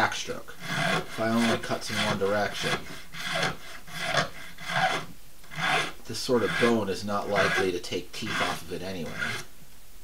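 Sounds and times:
file rasping across bone: 0.6s - 9.5s.

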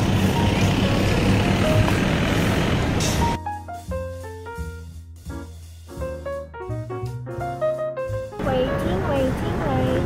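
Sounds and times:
road traffic rumble: 0.0s - 3.4s, 8.3s - 10.0s.

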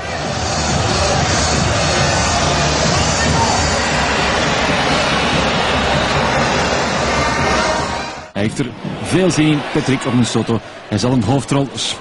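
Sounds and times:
music: 0.0s - 8.4s
stadium crowd noise: 0.0s - 12.0s.

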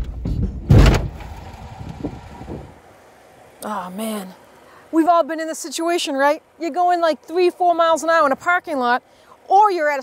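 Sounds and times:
car bumper thud: 0.0s - 2.8s.

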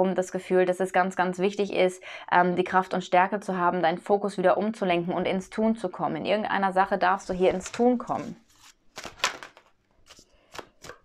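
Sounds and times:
cards slapping while shuffled: 8.4s - 11.0s.

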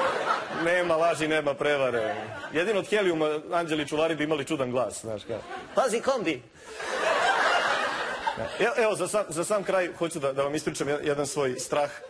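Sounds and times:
audience laughing: 0.0s - 2.9s, 5.3s - 9.1s.

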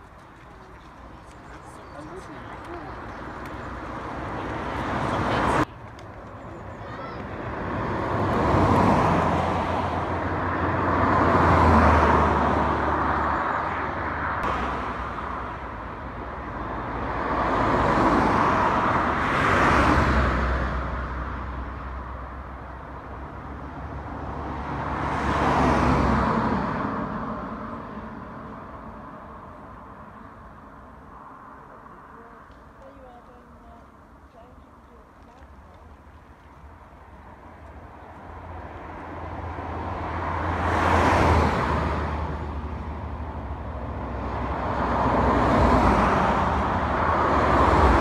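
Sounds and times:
vehicles passing fast: 0.0s - 48.0s.

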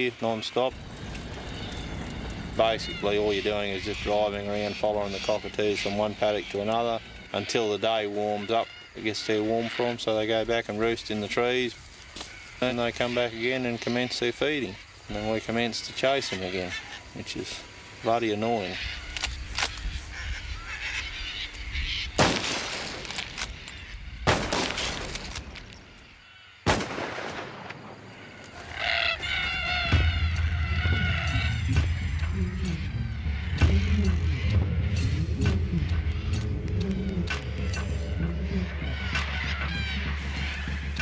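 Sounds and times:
cockatoos screeching: 0.0s - 26.7s, 28.0s - 41.0s
rifle shots: 22.2s - 23.6s, 24.2s - 25.6s, 26.6s - 28.1s.

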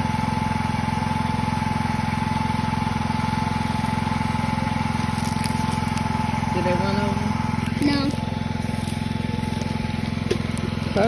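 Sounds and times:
small engine running: 0.0s - 11.0s.

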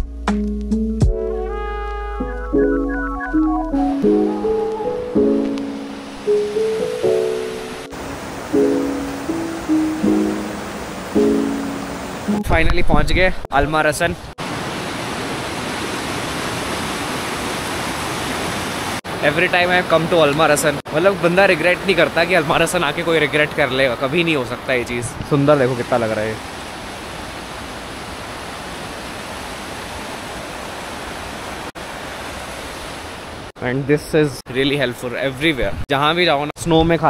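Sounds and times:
stream rushing over rocks: 4.1s - 12.3s, 14.4s - 24.8s, 25.4s - 33.5s.

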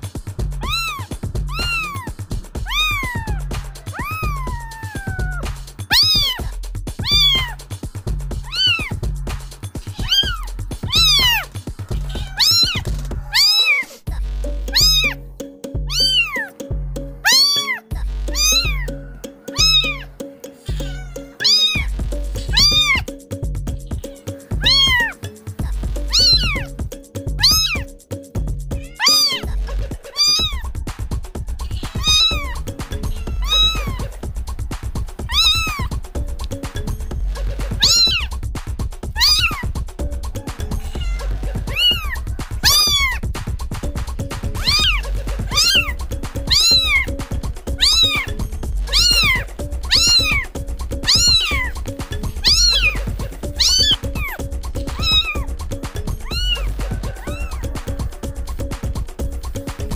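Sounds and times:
music with pulsing bass beat: 0.0s - 59.9s
kitten meowing: 0.6s - 7.6s, 8.4s - 9.0s, 9.8s - 14.0s, 14.7s - 15.2s, 15.9s - 16.5s, 17.2s - 18.9s, 19.5s - 23.1s, 23.9s - 25.2s, 26.1s - 26.7s, 27.4s - 27.9s, 28.8s - 29.5s, 30.1s - 30.7s, 31.6s - 34.1s, 35.2s - 36.0s, 37.7s - 38.3s, 39.1s - 39.7s, 40.6s - 43.2s, 44.6s - 51.8s, 52.4s - 55.5s, 56.2s - 58.0s.

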